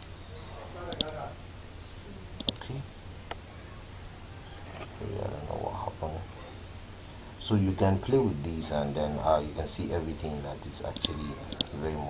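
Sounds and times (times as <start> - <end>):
faint background hiss: 0.0 - 12.0
man murmuring: 5.0 - 6.5.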